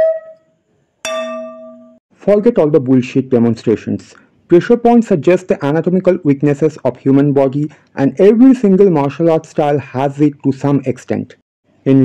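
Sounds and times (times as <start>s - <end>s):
flute note: 0.0s - 0.5s
bell-like chime ringing: 1.0s - 2.0s.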